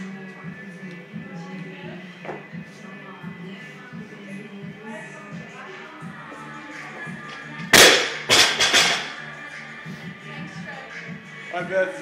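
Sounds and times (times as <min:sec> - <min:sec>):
background music: 0:00.0 - 0:12.0
barbell crashing onto rubber floor: 0:07.7 - 0:09.2.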